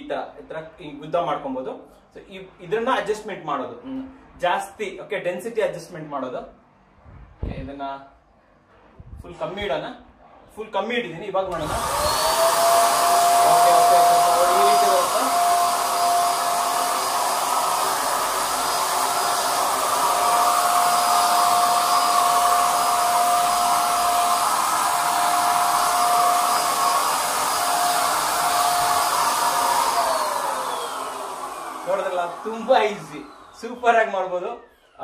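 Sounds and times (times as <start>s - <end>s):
paint sprayer motor whine: 11.5s - 35.0s.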